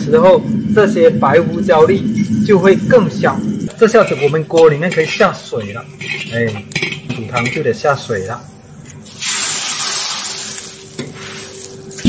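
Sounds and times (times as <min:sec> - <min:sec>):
water sizzling in hot wok: 0:00.0 - 0:12.0.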